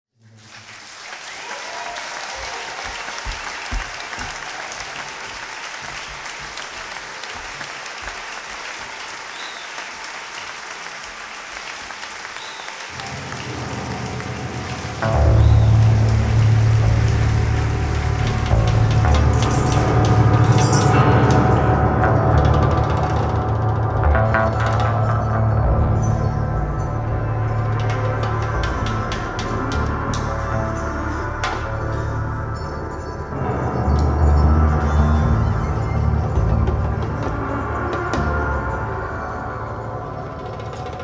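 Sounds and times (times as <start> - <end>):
audience applause: 0.2 - 21.4
low bass note: 13.0 - 32.5
live band playing: 34.5 - 41.0.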